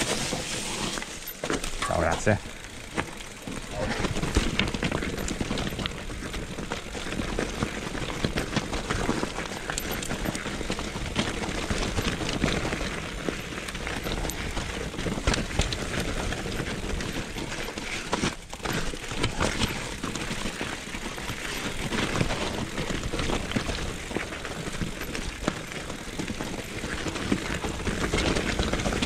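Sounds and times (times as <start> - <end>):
bike knocking and rattling: 0.0 - 29.0
bike tyres rolling over gravel: 0.0 - 29.0.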